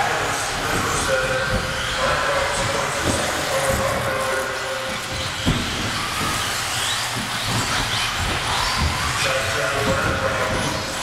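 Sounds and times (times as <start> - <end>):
rc cars motor whine: 0.0 - 11.0.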